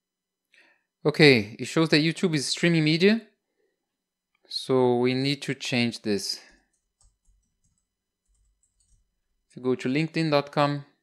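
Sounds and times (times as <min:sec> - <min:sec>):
soft keyboard typing: 0:06.5 - 0:09.3.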